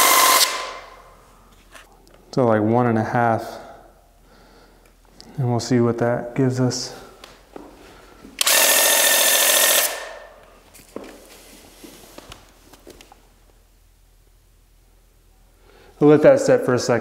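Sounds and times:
paint sprayer pump whining: 0:00.0 - 0:00.9, 0:08.4 - 0:10.2.

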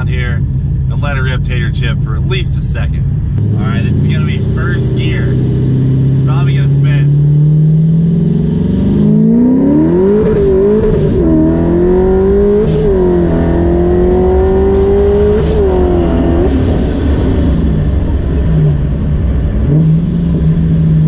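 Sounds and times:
car engine revving through upshifts: 0:03.4 - 0:21.0.

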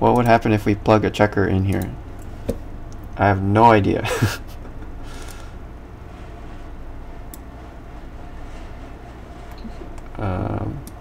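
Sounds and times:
low steady background hum: 0:00.0 - 0:11.0
person exhaling breathily: 0:05.0 - 0:05.6.

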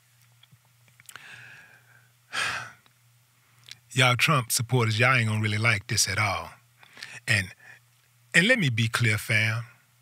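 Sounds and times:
faint low hum: 0:00.0 - 0:10.0
man sighing: 0:02.3 - 0:02.8.

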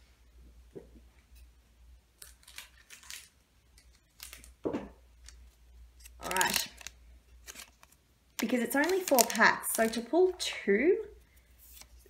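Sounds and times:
scissors snipping foil: 0:06.0 - 0:10.1.

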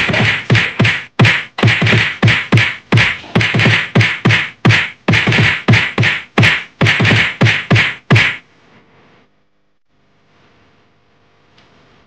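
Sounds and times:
punch and whack sound effects: 0:00.0 - 0:08.4.

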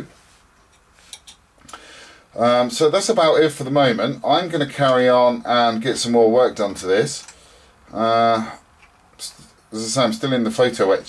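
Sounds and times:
faint clicks of small parts: 0:07.2 - 0:07.4.

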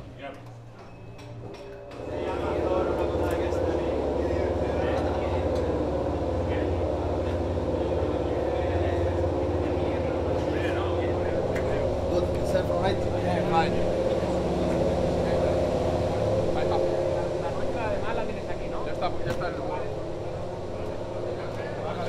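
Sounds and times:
faint voices: 0:01.6 - 0:22.0.

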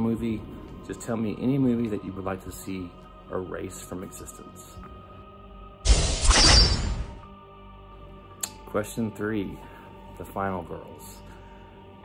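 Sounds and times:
soft background music: 0:00.0 - 0:12.0
noisy crash-like burst: 0:05.9 - 0:07.2.

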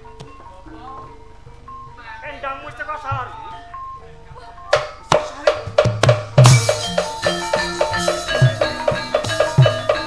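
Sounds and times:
ringing metallophone notes: 0:00.0 - 0:10.0
burst of drumming: 0:04.8 - 0:10.0
person singing: 0:06.8 - 0:10.0.

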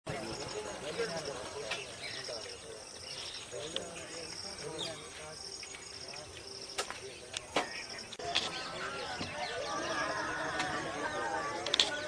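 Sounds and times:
faint distant voices: 0:00.1 - 0:12.0
insects chirping: 0:00.1 - 0:12.0.

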